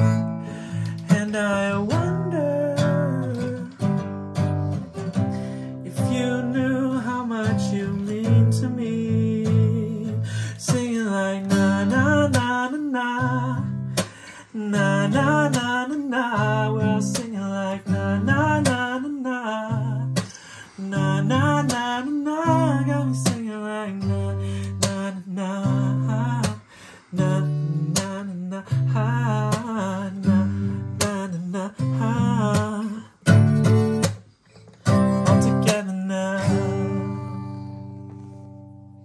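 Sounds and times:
person singing wordless melody: 0:00.0 - 0:04.8, 0:05.6 - 0:34.1, 0:34.9 - 0:37.9
strummed acoustic guitar: 0:00.0 - 0:39.0.

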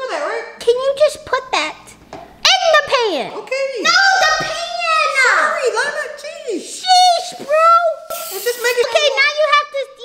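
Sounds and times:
high-pitched voices talking: 0:00.6 - 0:10.0
aerosol can spray hiss: 0:08.1 - 0:08.8.

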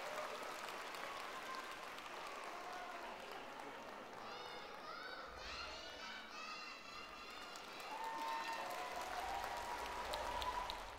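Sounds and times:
audience applause: 0:00.0 - 0:04.3, 0:07.1 - 0:10.9.

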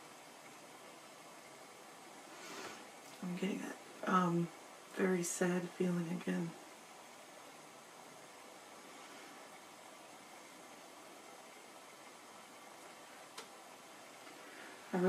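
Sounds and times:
faint hiss: 0:00.0 - 0:15.0.

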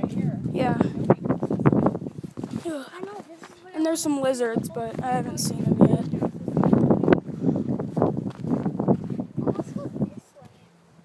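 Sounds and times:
footsteps crunching on rocky trail: 0:00.9 - 0:09.2.

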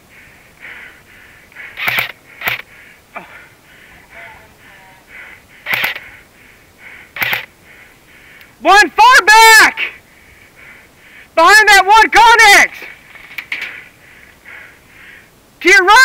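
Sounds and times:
airsoft gun shots: 0:01.8 - 0:02.6, 0:05.7 - 0:06.0, 0:07.2 - 0:07.5
faint regular ticking: 0:05.2 - 0:08.6.

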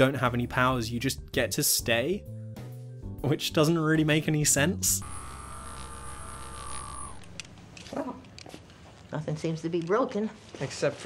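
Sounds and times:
electronic hum with high whine: 0:04.8 - 0:07.5.

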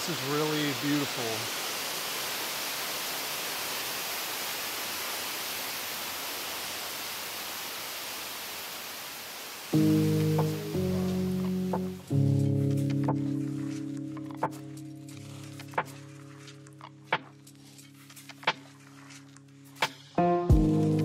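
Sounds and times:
waterfall and stream rushing: 0:00.0 - 0:20.1
background music with held chords: 0:09.8 - 0:21.0.

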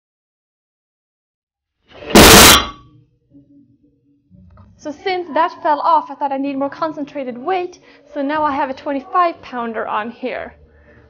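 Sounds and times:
iron plates crashing onto workbench: 0:02.1 - 0:02.8.

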